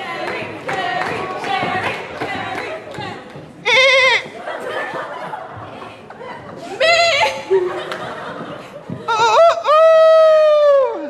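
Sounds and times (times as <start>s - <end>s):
audience chatter: 0.0s - 9.6s
person imitating goat bleat: 3.6s - 4.3s
audience laughter: 4.4s - 6.1s, 7.3s - 9.6s.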